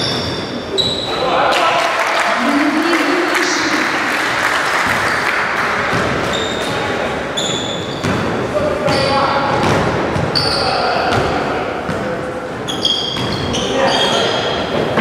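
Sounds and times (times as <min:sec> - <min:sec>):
sneakers squeaking on court: 0:00.0 - 0:01.2, 0:05.9 - 0:15.0.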